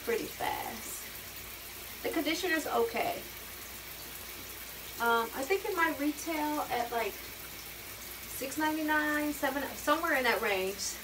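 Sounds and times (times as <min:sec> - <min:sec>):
shower water running: 0:00.0 - 0:11.0.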